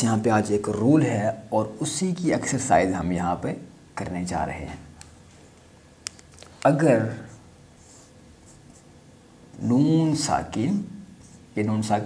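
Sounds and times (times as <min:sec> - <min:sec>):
marker writing on whiteboard: 0:07.1 - 0:08.9, 0:11.2 - 0:11.6.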